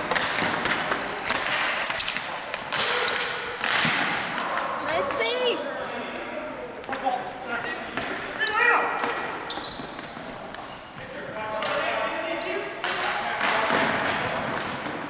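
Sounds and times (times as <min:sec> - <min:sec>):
sneakers squeaking: 0:00.0 - 0:04.1, 0:07.8 - 0:13.0
sticks and ball clacking: 0:00.0 - 0:04.6.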